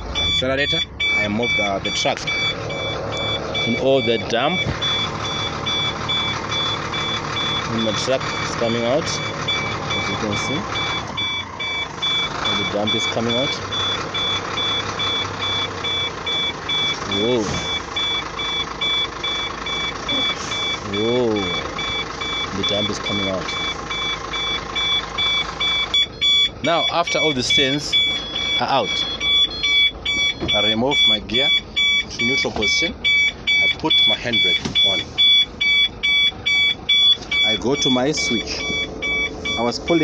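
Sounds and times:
diesel engine running: 0.0 - 40.0
truck warning beeper: 0.0 - 40.0.

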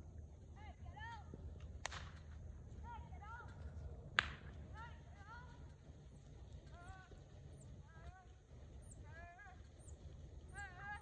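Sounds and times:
bullwhip crack: 1.8 - 2.2, 4.2 - 4.5.

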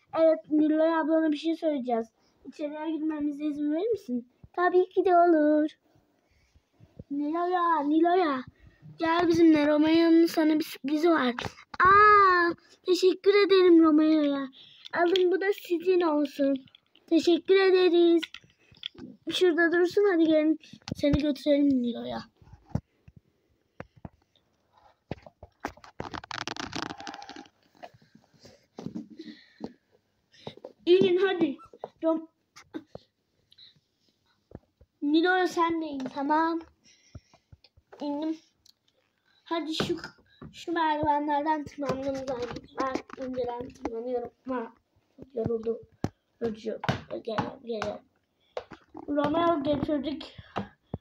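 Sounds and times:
plastic toys clicking and knocking: 14.2 - 19.5, 41.0 - 44.4.

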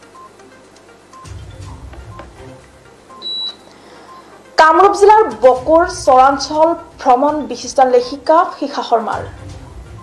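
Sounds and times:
high-pitched beep: 3.1 - 4.2.

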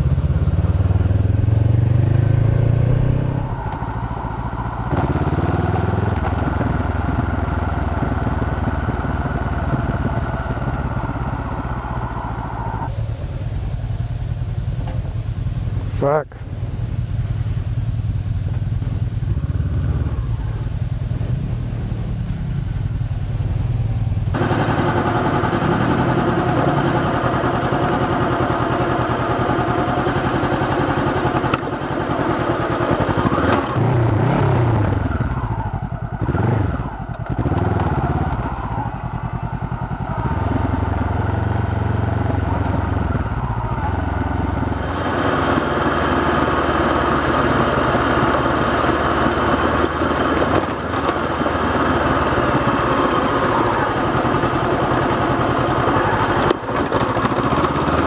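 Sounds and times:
motorcycle engine revving: 0.0 - 58.0.

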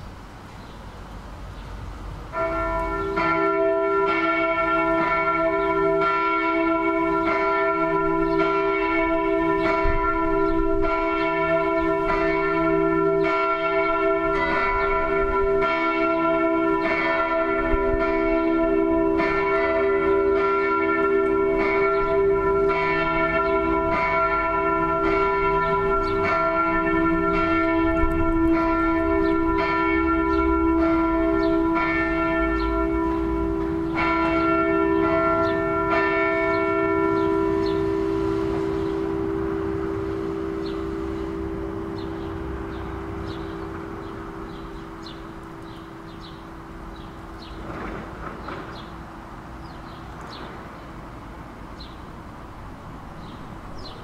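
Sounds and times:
church bells ringing: 2.3 - 54.0.

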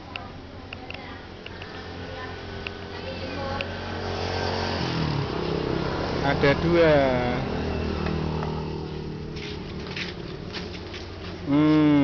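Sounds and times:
vehicle engine running: 0.6 - 12.0.

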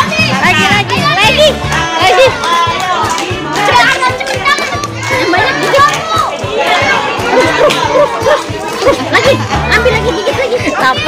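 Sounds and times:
background music: 0.0 - 11.0
children shouting and chattering: 0.0 - 11.0.

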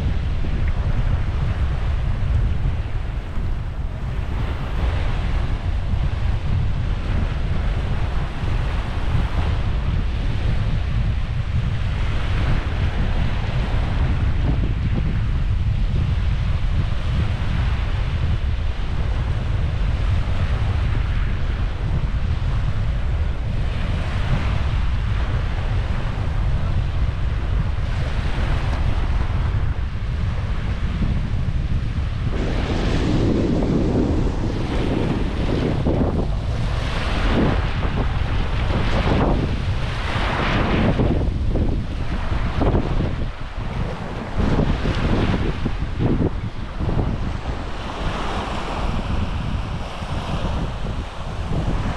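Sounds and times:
small waves washing on sand: 0.0 - 51.9
wind rumbling on microphone: 0.0 - 51.9.

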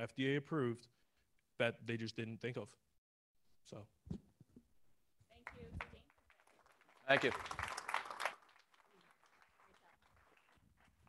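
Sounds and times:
audience applause: 6.2 - 11.0.

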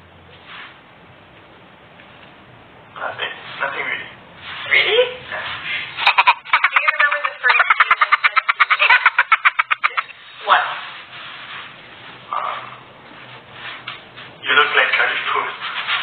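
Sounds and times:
person's voice rapid repeated pulses: 6.0 - 10.2.

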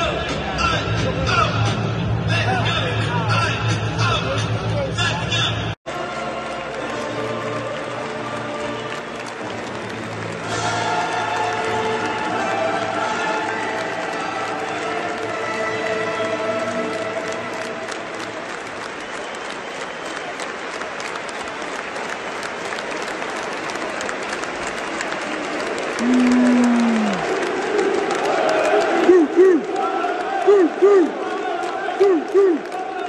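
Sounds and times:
crowd applauding and cheering: 5.9 - 33.0
loud held call: 26.0 - 27.6, 28.2 - 33.0
fans shouting rhythmic calls: 26.0 - 33.0.

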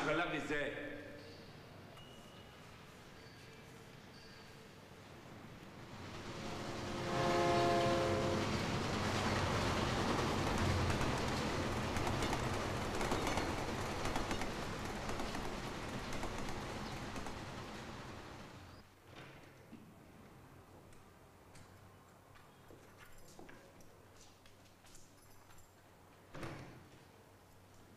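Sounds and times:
train rumble: 4.9 - 18.8
train horn: 6.3 - 8.8
wheel clatter: 7.6 - 18.8.

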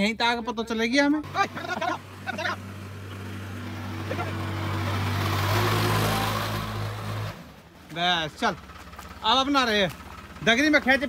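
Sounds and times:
diesel engine under load: 0.0 - 11.0.

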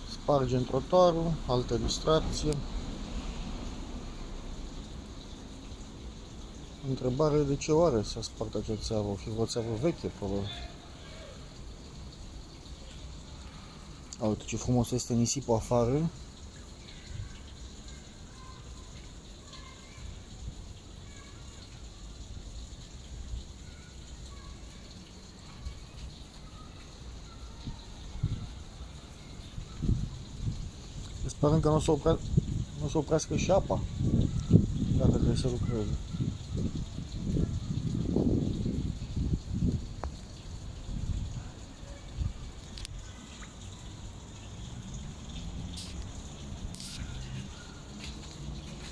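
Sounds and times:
water running into a puddle: 0.0 - 48.9
short hissing bursts: 45.6 - 47.4.

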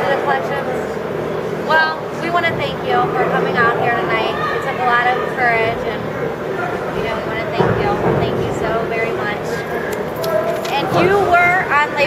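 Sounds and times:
people talking: 0.0 - 1.0, 1.7 - 9.7, 10.6 - 12.0.

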